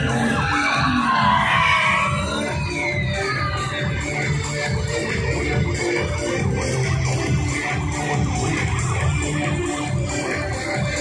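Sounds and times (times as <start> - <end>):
loud music with pounding beat: 0.0 - 11.0.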